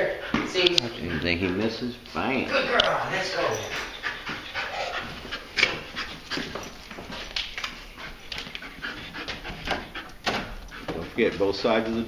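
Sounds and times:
dog panting: 0.0s - 11.9s.

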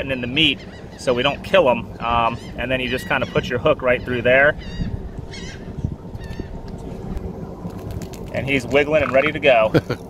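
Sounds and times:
low rumbling water noise: 0.0s - 10.0s.

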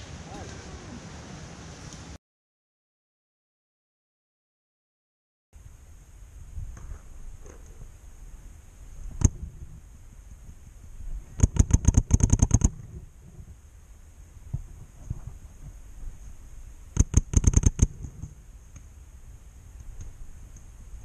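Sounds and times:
paintball marker firing: 17.0s - 18.0s.

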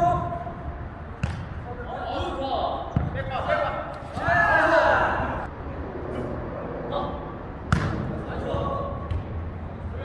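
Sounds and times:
ball impacts: 1.2s - 1.6s, 7.7s - 9.4s.

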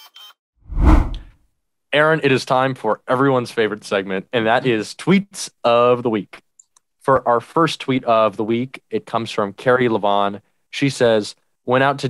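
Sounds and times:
whoosh transition effect: 0.7s - 1.3s.

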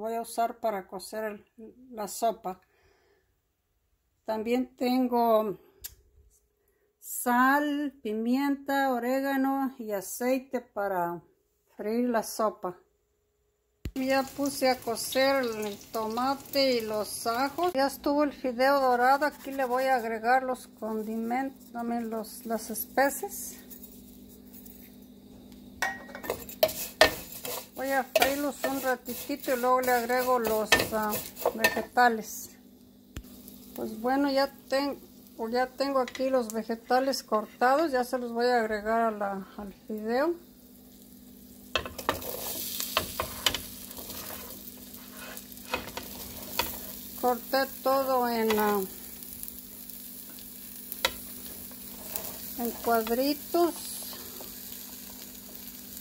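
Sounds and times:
food sizzling in oil: 13.9s - 56.0s
metal spoon scraping a pan: 19.2s - 20.1s, 25.8s - 32.0s, 41.7s - 47.1s, 51.0s - 53.2s.

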